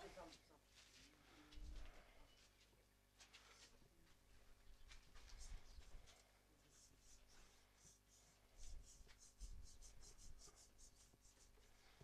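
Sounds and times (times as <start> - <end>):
faint scratching strokes: 4.9 - 12.0.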